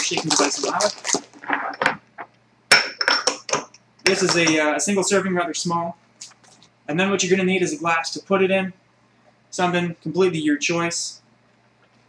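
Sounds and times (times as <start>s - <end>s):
shot glasses clinking: 2.7s - 4.6s.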